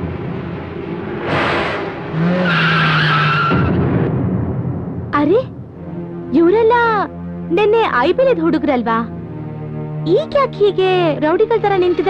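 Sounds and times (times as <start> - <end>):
rushing burst of noise: 0.0 - 2.5
car tyres screeching: 0.8 - 3.8.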